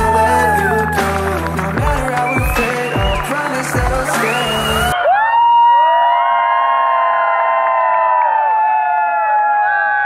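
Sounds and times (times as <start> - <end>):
crowd cheering: 0.0 - 10.0.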